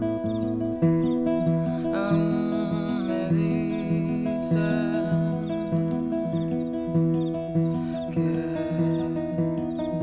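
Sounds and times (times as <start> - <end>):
fingerpicked acoustic guitar: 0.0 - 10.0.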